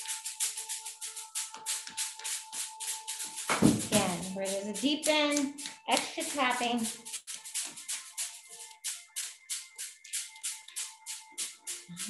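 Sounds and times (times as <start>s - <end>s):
hand patting arm: 1.4s - 8.0s.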